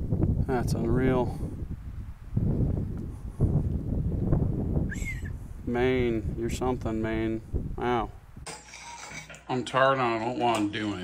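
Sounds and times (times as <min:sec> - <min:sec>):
wind buffeting microphone: 0:00.0 - 0:08.5.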